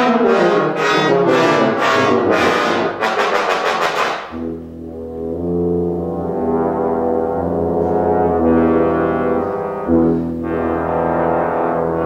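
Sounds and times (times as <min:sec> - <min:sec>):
low brass notes: 0:00.0 - 0:12.0.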